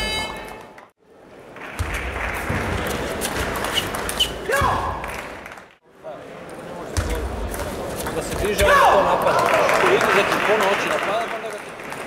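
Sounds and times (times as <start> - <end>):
sports hall noise: 0.0 - 12.0.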